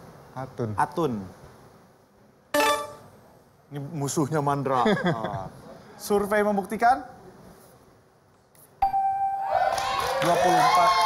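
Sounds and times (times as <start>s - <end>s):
electronic ding with ringing tone: 8.8s - 9.5s.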